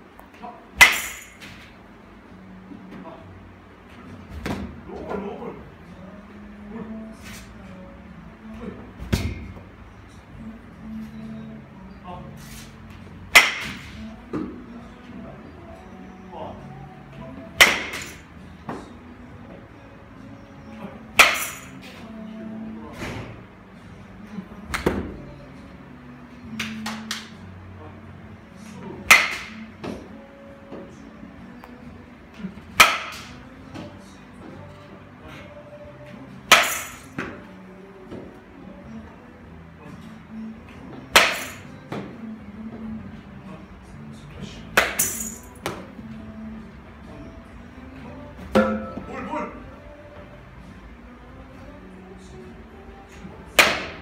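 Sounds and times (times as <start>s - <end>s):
bat cracking ball: 0.8s - 1.6s, 13.3s - 14.0s, 17.6s - 18.2s, 29.0s - 29.7s, 32.8s - 33.4s, 41.1s - 42.1s, 44.8s - 45.1s, 53.6s - 54.0s
bat hitting ball crack: 13.4s - 13.9s, 29.1s - 29.6s.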